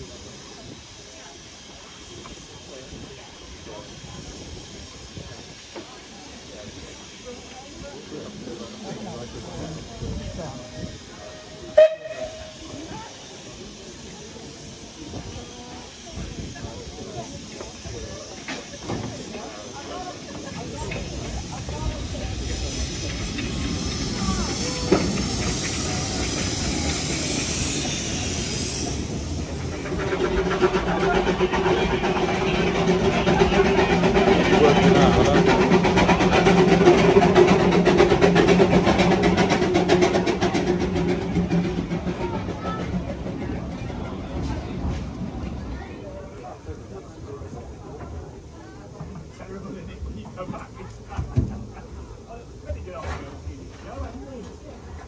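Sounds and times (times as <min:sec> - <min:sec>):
steam locomotive hissing: 0:00.0 - 0:55.0.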